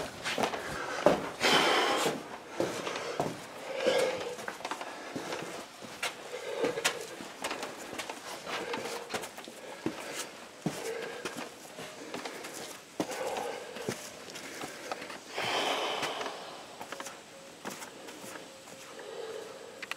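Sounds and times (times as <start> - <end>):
soft breaths: 0.0 - 19.9
footsteps on rocky ground: 2.0 - 3.5, 4.2 - 16.2.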